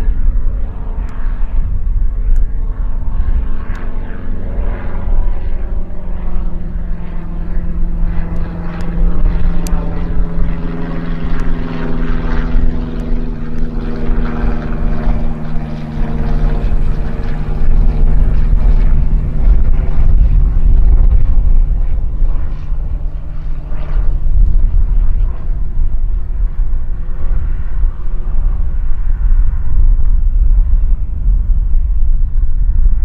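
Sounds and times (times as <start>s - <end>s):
deep rumble: 0.0s - 33.0s
propeller aircraft engine drone: 0.0s - 33.0s.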